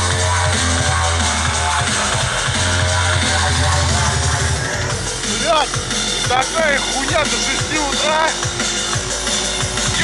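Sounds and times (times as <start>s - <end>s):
drum and bass music: 0.0s - 10.0s.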